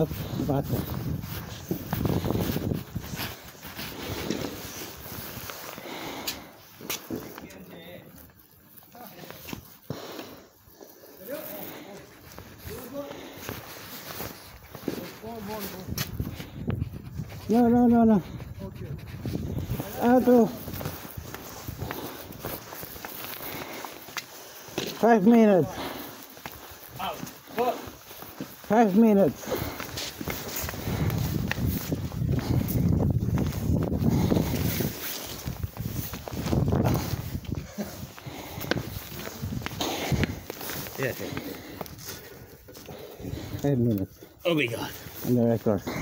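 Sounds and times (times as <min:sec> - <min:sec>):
fabric rubbing on microphone: 0:00.0 - 0:05.8, 0:11.1 - 0:41.2.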